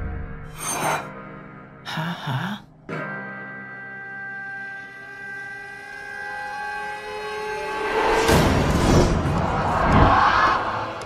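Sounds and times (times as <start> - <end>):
eerie horror drone: 3.9 - 11.0.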